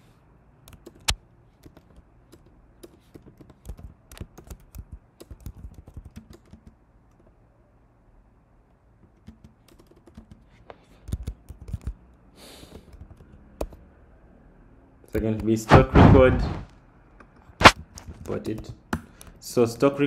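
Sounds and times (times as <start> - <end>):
typing on computer keyboard: 0.6 - 7.3, 9.0 - 12.0, 12.7 - 13.8, 17.7 - 19.4.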